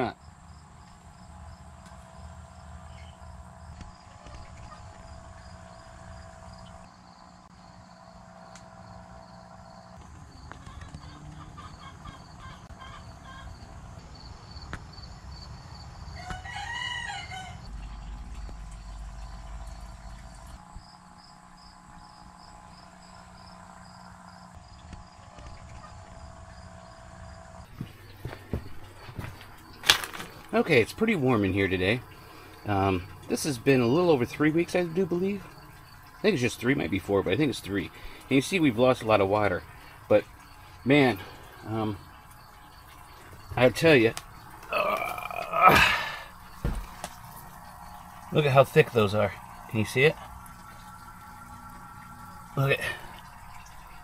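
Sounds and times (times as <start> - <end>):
faint steady hum: 0.0 - 54.0
insect chirping: 0.0 - 54.0
rooster crowing: 16.1 - 17.7.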